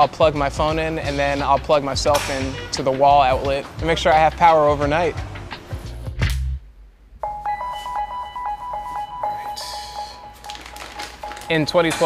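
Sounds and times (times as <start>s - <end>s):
light electronic music: 0.0s - 6.5s, 7.2s - 12.0s.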